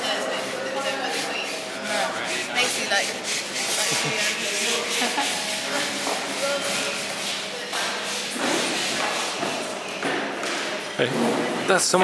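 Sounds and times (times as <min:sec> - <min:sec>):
hands rubbing wood: 0:00.0 - 0:11.6
indistinct chatter in echoing room: 0:00.0 - 0:12.0.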